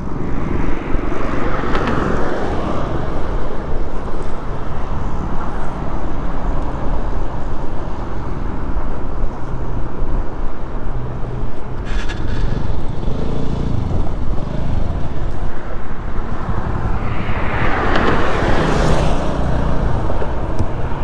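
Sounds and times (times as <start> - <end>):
highway traffic noise: 0.0 - 21.0
wind rumble on microphone: 0.0 - 21.0
vehicle passing: 11.8 - 21.0.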